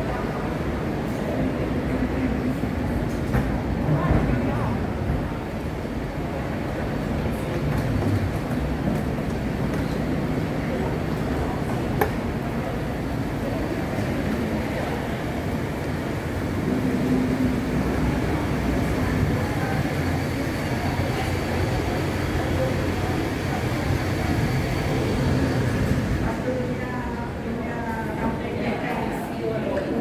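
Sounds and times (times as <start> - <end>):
voices in background: 0.0 - 30.0.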